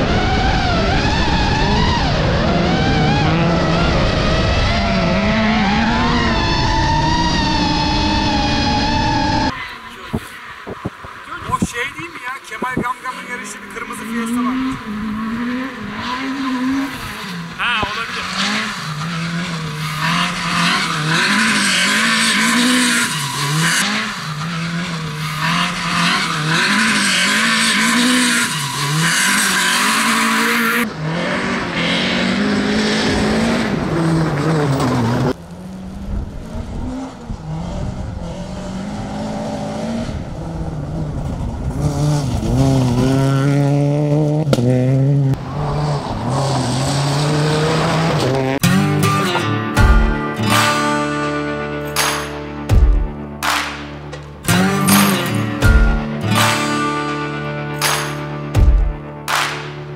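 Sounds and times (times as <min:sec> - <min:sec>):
rally car engine revving: 0:00.0 - 0:59.9
gravel hissing under tyres: 0:35.4 - 0:37.2.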